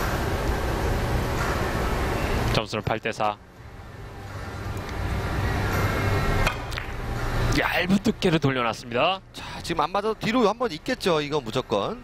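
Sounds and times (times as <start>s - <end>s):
broad background noise: 0.0s - 12.0s.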